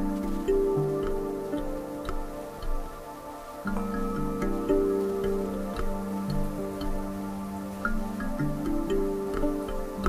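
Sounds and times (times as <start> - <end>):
plucked kalimba and lute music: 0.0 - 10.0.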